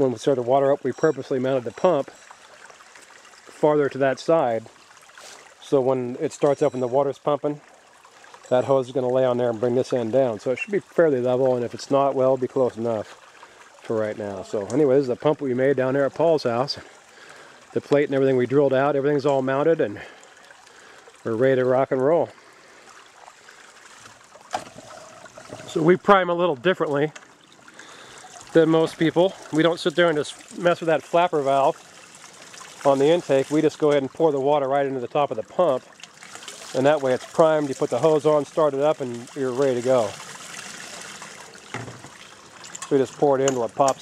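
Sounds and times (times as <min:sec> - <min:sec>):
creek water trickling: 0:00.0 - 0:44.0.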